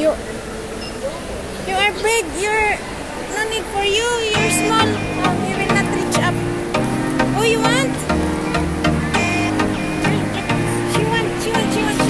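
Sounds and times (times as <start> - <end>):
background music with steady beat: 4.4 - 12.0.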